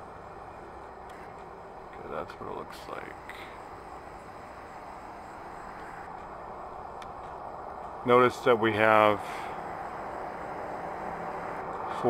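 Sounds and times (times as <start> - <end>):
distant street traffic hum: 0.0 - 12.0.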